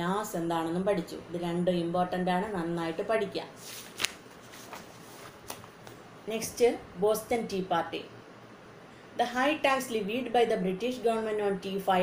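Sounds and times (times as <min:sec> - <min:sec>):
paper rustling: 0:03.6 - 0:06.0.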